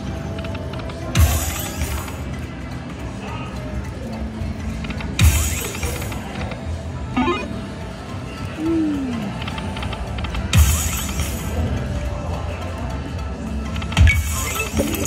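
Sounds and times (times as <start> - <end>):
electronic game music: 7.1 - 7.8, 14.2 - 15.0.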